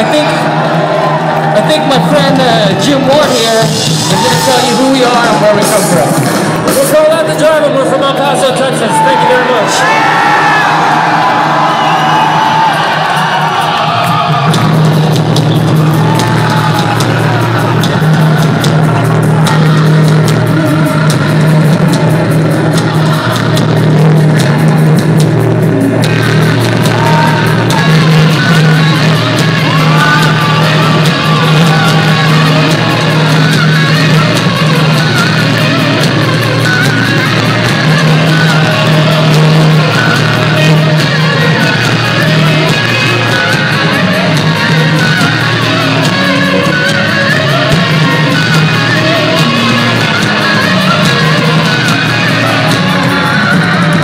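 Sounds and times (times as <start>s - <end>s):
rock band playing live: 0.0s - 54.0s.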